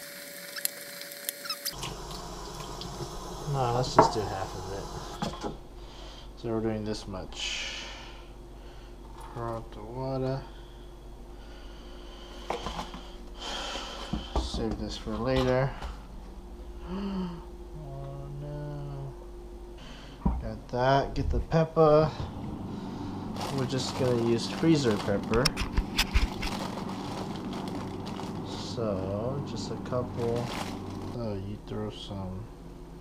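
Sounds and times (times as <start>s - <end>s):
water pouring into a sink: 0.0s - 5.0s
plastic freezer bags crinkling: 23.3s - 31.6s.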